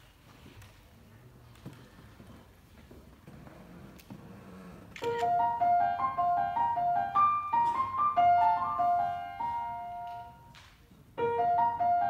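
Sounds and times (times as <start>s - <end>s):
grand piano playing: 5.1s - 12.0s.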